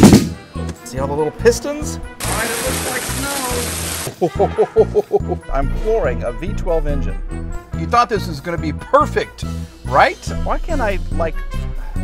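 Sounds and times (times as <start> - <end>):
background music: 0.0 - 12.0
hail falling on a car: 2.2 - 4.1.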